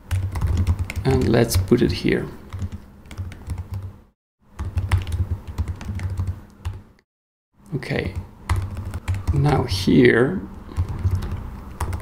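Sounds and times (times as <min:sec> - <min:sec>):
computer keyboard typing: 0:00.0 - 0:01.6, 0:02.5 - 0:03.9, 0:04.5 - 0:06.8, 0:08.0 - 0:09.6, 0:10.7 - 0:12.0.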